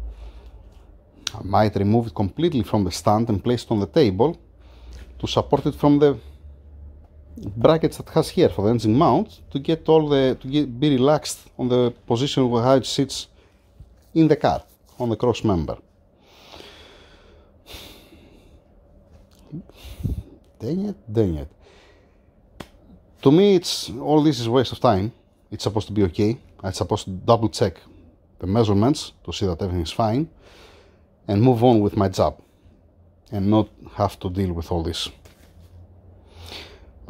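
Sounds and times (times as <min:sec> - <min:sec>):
low room hum: 0:00.0 - 0:37.0
man breathing in: 0:16.2 - 0:18.7, 0:19.7 - 0:20.4, 0:21.6 - 0:22.4, 0:30.4 - 0:31.2, 0:36.2 - 0:37.0.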